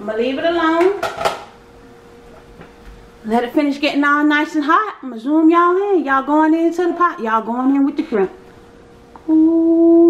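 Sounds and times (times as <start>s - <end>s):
faint steady hum: 0.0s - 10.0s
cookware clattering: 0.8s - 1.5s.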